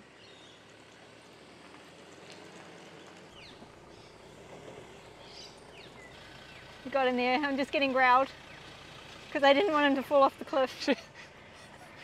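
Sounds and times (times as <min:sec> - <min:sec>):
faint outdoor ambience: 0:00.0 - 0:12.0.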